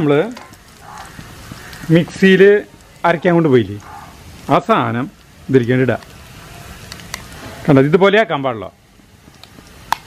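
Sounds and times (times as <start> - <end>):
faint crackles: 0.0 - 10.0
food sizzling in oil: 0.0 - 10.0.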